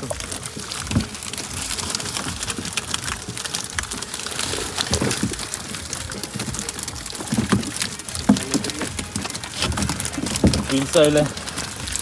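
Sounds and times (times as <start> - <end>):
fish flapping and slapping: 0.0 - 12.0.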